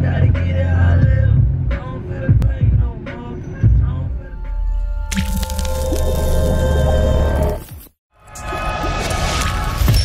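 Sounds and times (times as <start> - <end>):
music with deep bass: 0.0 - 7.6
wet splat: 5.1 - 6.1.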